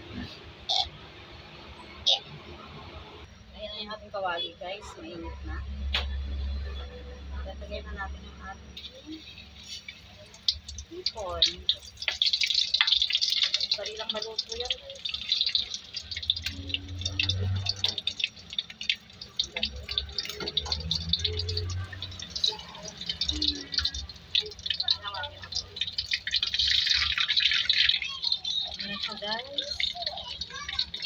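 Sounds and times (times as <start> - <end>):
food frying in hot oil: 8.8 - 31.0.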